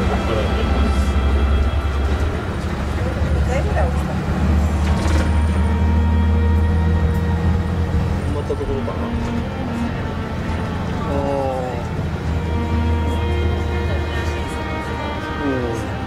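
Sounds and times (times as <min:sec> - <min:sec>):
passengers' voices: 0:00.0 - 0:05.7, 0:08.3 - 0:16.0
coach engine and road rumble: 0:00.0 - 0:16.0.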